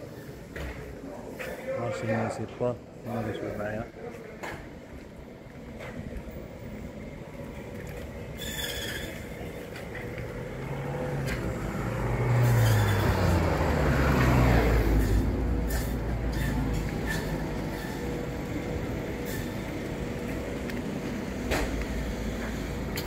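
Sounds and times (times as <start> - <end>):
car driving past: 9.8 - 19.6.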